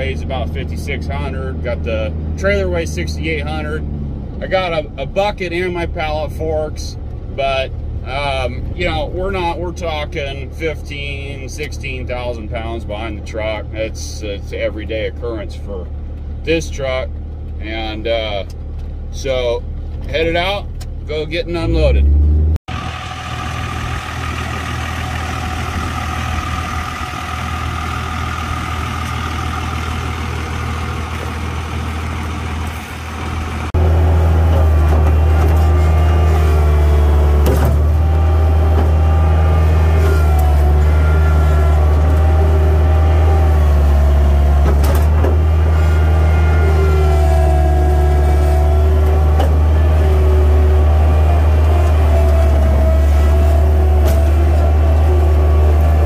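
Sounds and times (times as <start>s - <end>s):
close diesel engine drone: 0.0s - 56.0s
vehicle engine drone: 0.0s - 56.0s.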